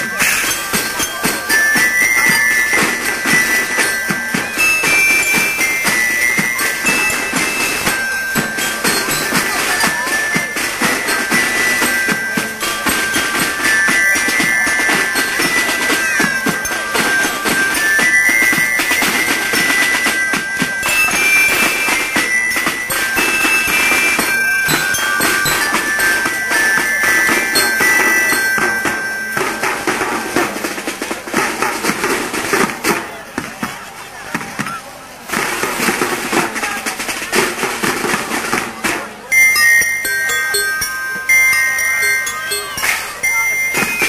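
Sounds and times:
drums beating: 0:00.0 - 0:44.0
marching band music: 0:00.0 - 0:44.0.

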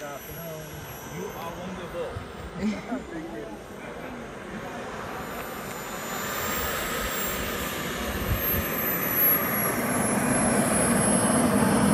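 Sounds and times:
model jet turbine whine: 0:00.0 - 0:11.9.

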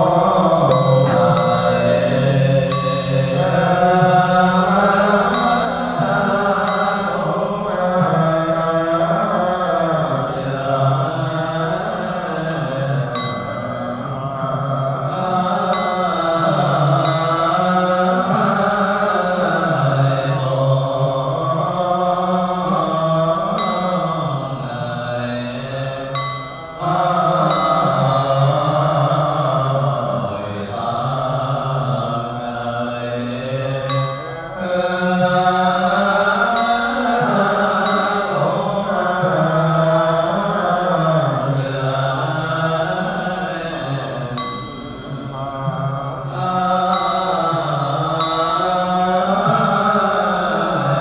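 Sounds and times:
monks chanting: 0:00.0 - 0:51.0.

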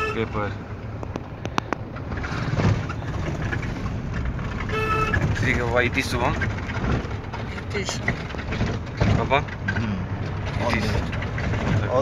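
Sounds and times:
van engine and road noise: 0:00.0 - 0:12.0.

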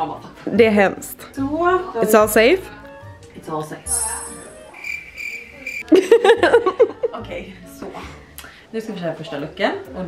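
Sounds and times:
steady high-pitched tone: 0:04.7 - 0:05.8
woman laughing: 0:05.8 - 0:07.2.

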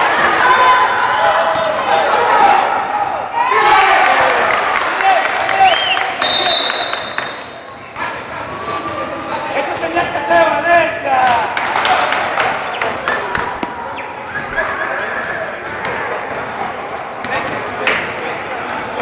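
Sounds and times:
players talking and shouting: 0:00.0 - 0:19.0
referee's whistle blast: 0:05.8 - 0:07.4
basketballs bouncing on hard court: 0:15.6 - 0:16.6.

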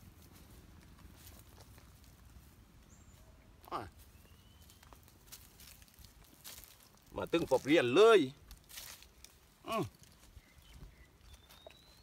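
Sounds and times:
footsteps on dry leaves: 0:00.0 - 0:03.3, 0:03.9 - 0:12.0
man saying oh: 0:09.6 - 0:09.9.

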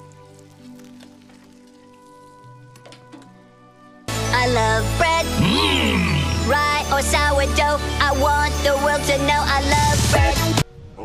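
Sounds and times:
faint crackles: 0:00.0 - 0:03.4.

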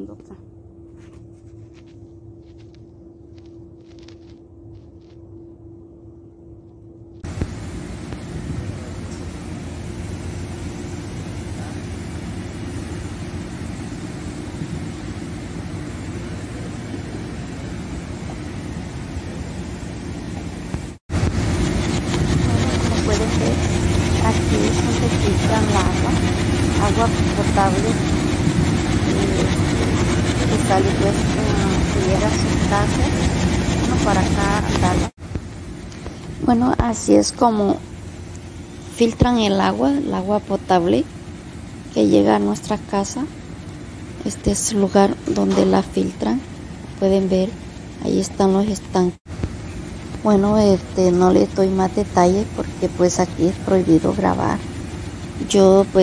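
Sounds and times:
faint hum: 0:00.0 - 0:56.0
loud steady rumble: 0:00.0 - 0:56.0.

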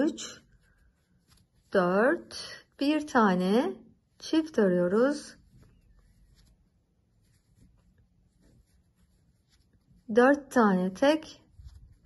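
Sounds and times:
crochet hook rustling yarn: 0:00.0 - 0:12.0.

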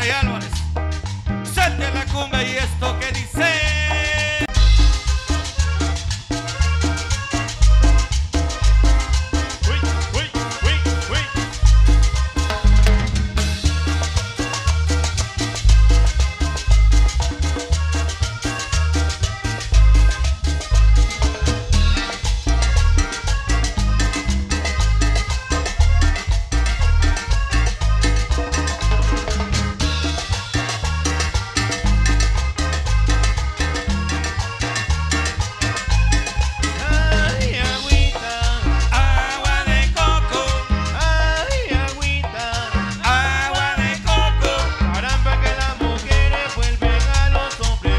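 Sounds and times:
driving percussion beat: 0:00.0 - 0:47.9
heavy bass line: 0:00.0 - 0:47.9
live band playing cumbia: 0:00.0 - 0:47.9.

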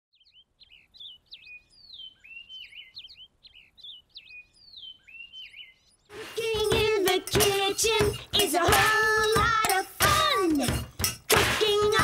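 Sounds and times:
birdsong chirps and whistles: 0:00.1 - 0:06.1.

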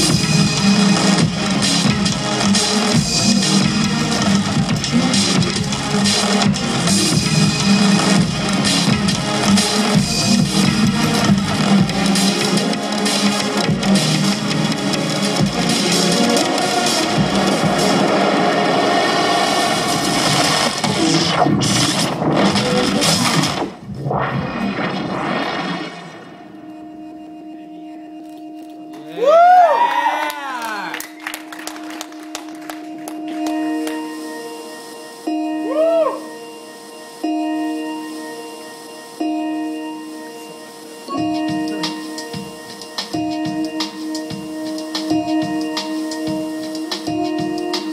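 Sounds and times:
loud electronic beat: 0:00.0 - 0:23.9, 0:41.1 - 0:47.9
pulsing held synth chord: 0:31.1 - 0:47.9.

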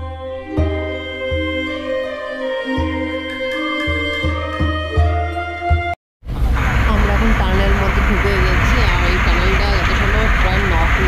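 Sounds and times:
car road and engine rumble: 0:06.2 - 0:11.0
people talking: 0:06.8 - 0:11.0.

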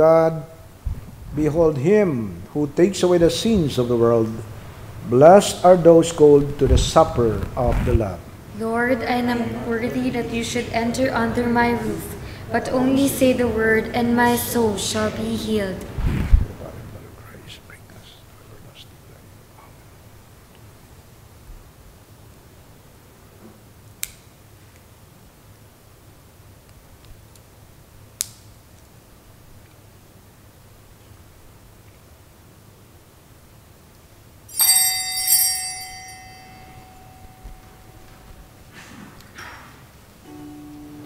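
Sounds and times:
man whispering: 0:16.5 - 0:19.8
small altar bells ringing: 0:34.5 - 0:38.8.

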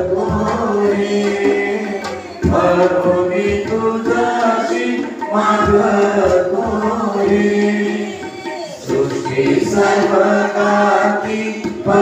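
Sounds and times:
group singing devotional song: 0:00.0 - 0:12.0
tabla: 0:00.0 - 0:12.0.

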